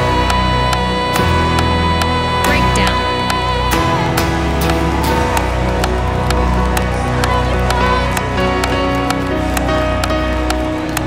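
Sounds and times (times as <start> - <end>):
steady bass: 0.0 - 9.9
sustained keyboard chords: 0.0 - 11.0.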